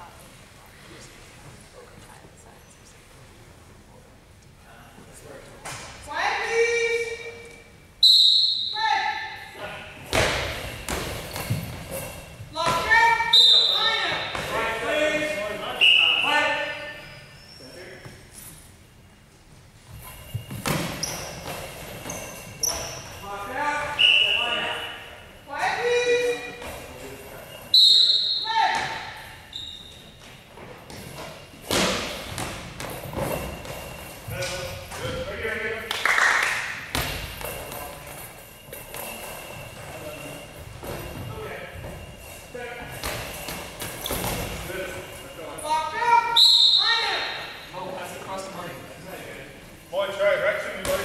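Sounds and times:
ball bells rattling: 19.9 - 25.5, 26.3 - 27.9, 31.0 - 35.0, 37.1 - 46.0.

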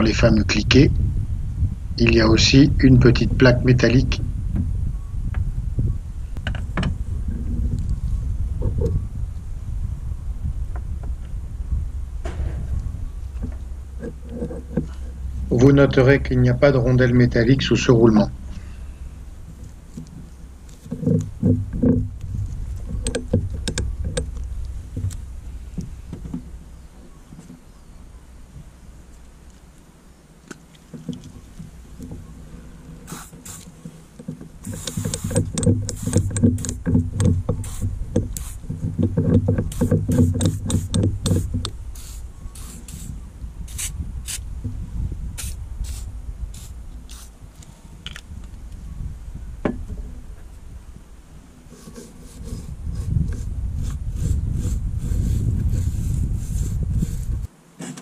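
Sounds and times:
low rumble: 0.0 - 30.2, 34.5 - 51.4, 52.2 - 57.5
aerosol can spraying: 33.1 - 33.7, 34.6 - 36.8, 37.6 - 38.6, 39.7 - 43.1, 43.7 - 44.4, 45.4 - 47.3.

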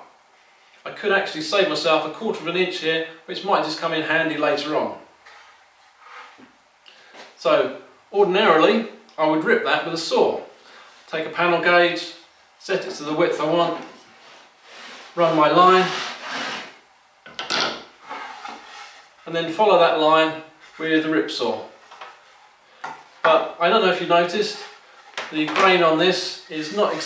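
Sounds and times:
wood rubbing on wood: 13.7 - 16.8, 17.7 - 19.2, 26.4 - 27.0
wood knocking and scraping: 17.3 - 19.0.

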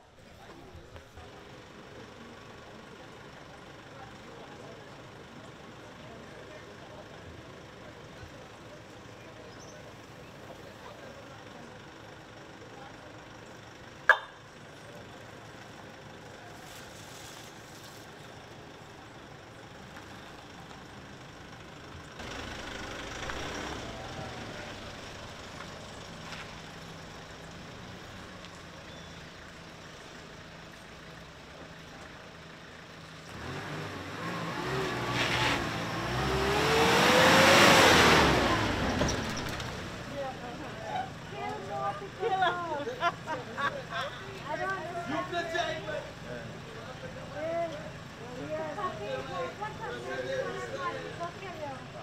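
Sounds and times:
truck engine driving past: 18.3 - 52.0.

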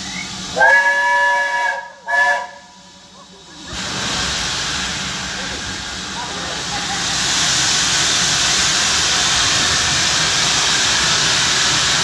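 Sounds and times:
steam whistle blasts: 0.0 - 2.7
hiss of escaping steam: 0.0 - 12.0.

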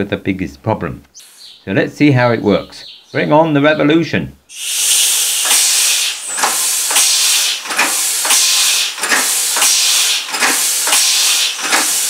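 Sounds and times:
air hissing from engine valves: 1.2 - 1.6, 4.5 - 12.0
engine valve clicks: 5.2 - 12.0.

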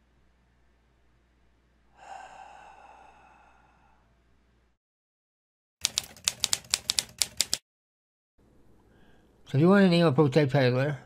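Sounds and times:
typewriter keys clacking: 5.8 - 7.6.

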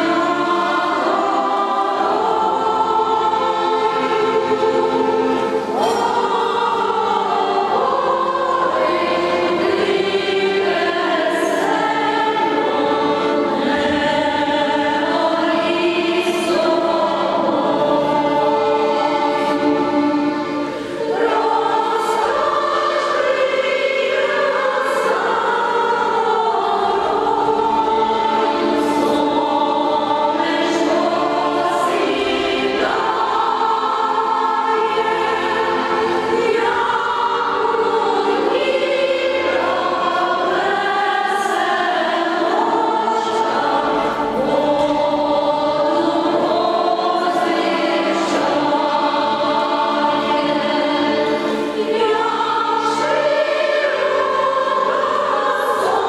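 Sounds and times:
women's choir singing in harmony: 0.0 - 56.0.

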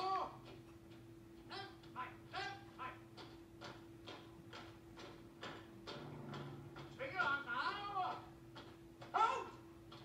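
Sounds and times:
film soundtrack hum: 0.0 - 10.0
soldiers marching in step: 0.0 - 10.0.

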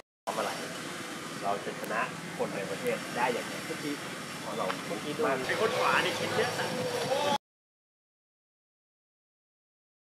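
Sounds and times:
steady background hiss: 0.3 - 7.3.

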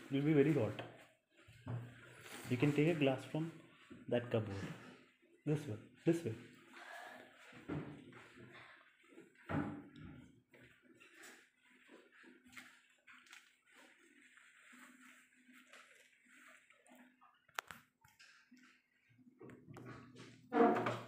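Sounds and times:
faint shuffling handling noises: 0.0 - 17.7.

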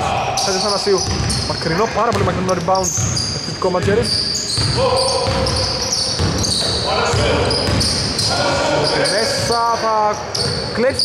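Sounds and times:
players calling out: 0.0 - 11.0
sneaker squeaks: 0.2 - 11.0
ball bouncing: 0.6 - 8.3.

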